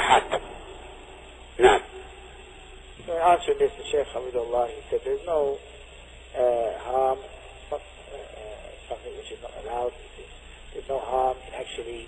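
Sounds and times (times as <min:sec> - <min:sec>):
man talking over telephone: 0:00.0 - 0:00.5, 0:03.0 - 0:05.6, 0:06.4 - 0:12.0.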